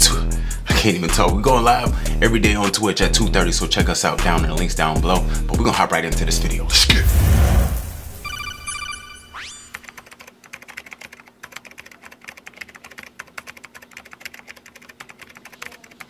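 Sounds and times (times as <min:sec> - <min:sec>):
electronic beeps with rising sweep: 0:07.8 - 0:10.0
keyboard typing clicks: 0:09.7 - 0:16.0.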